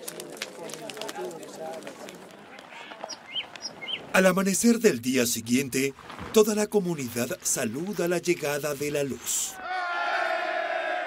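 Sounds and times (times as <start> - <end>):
people talking in background: 0.0 - 3.4
campfire popping and crackling: 0.0 - 9.6.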